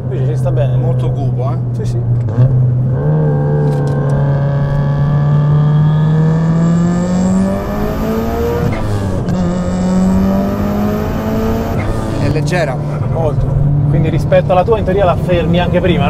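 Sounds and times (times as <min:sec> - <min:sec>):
turbocharged car engine accelerating: 0:00.0 - 0:16.0.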